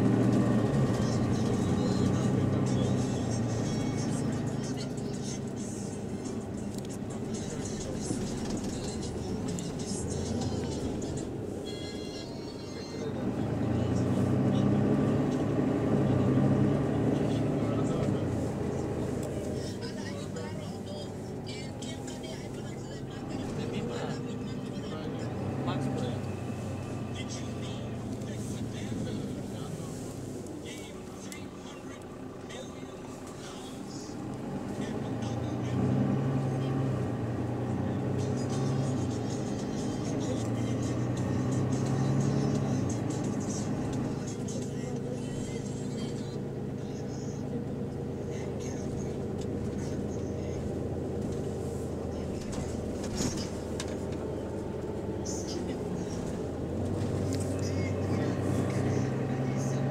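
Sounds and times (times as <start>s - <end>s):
bus engine: 0.0s - 59.9s
passengers talking: 0.0s - 59.9s
road noise: 0.0s - 59.9s.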